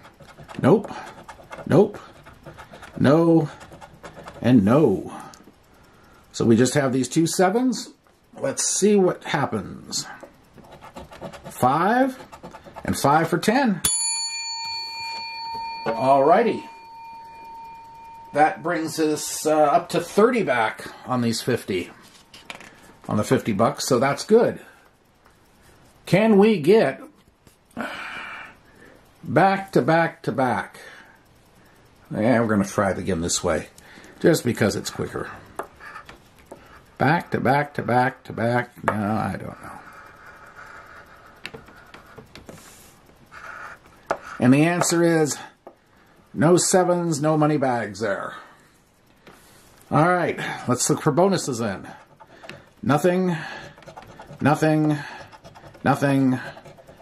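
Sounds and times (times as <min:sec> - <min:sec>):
coin scratching lottery ticket: 0:00.0 - 0:04.9, 0:10.6 - 0:13.5, 0:39.8 - 0:44.5, 0:51.4 - 0:57.0
metallic ding ringing: 0:13.8 - 0:19.3.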